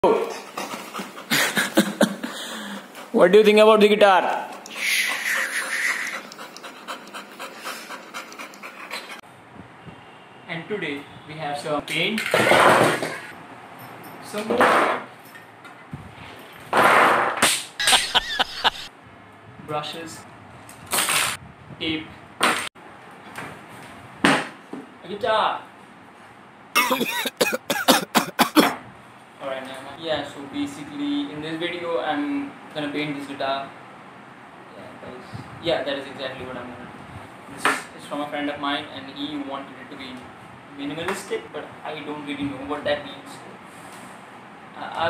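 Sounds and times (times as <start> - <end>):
dog panting quickly: 0.3 - 3.4, 4.4 - 9.2
man laughing: 1.2 - 2.8, 4.7 - 6.4, 17.8 - 18.9, 26.8 - 28.7.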